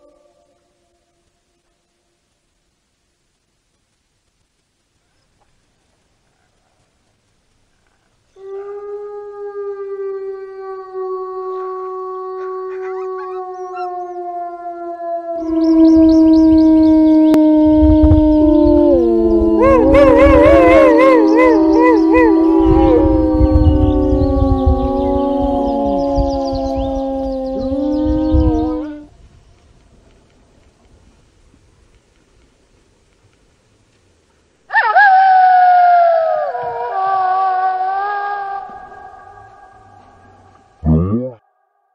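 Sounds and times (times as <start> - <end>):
wolves howling: 8.4 - 29.1, 34.7 - 40.7
low rumble: 21.4 - 31.5.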